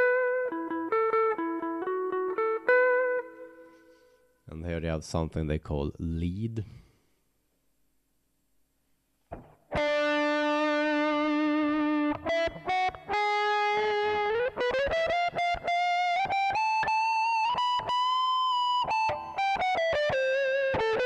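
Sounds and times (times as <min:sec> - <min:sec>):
distorted electric guitar lead: 0:09.3 - 0:21.0.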